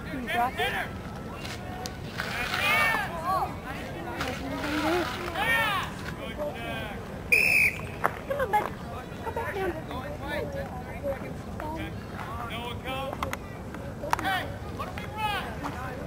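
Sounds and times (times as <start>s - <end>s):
referee's whistle blast: 7.3s - 7.9s.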